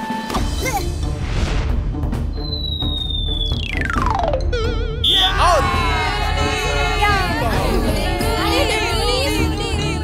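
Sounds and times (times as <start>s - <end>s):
background music: 0.0s - 10.0s
descending cartoon whistle: 2.4s - 4.2s, 4.9s - 5.4s.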